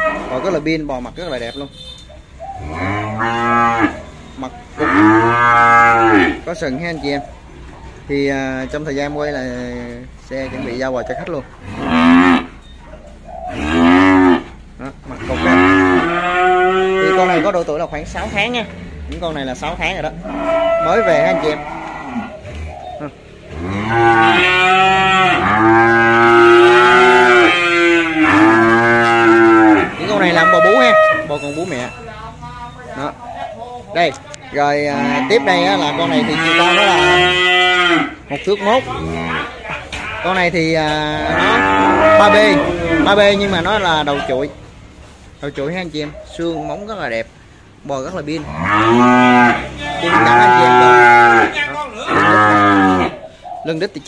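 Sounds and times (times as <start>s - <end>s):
calves mooing: 0.0s - 1.4s, 2.6s - 6.7s, 10.2s - 12.7s, 13.5s - 32.2s, 34.5s - 44.4s, 48.4s - 53.2s.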